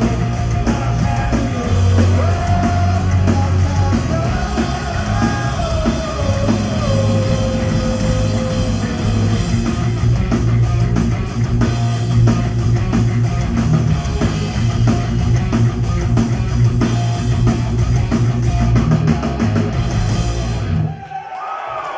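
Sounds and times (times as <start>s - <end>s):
electric bass: 0.0s - 20.9s
electric guitar: 0.0s - 20.9s
drum kit: 0.0s - 21.0s.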